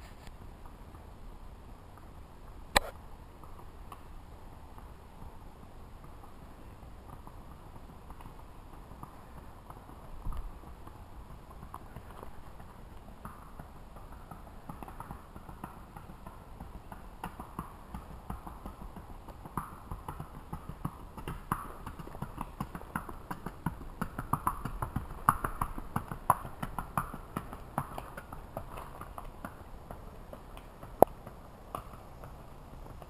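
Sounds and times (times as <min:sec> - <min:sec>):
horse hoofbeats on paved road: 0:02.8 - 0:33.0.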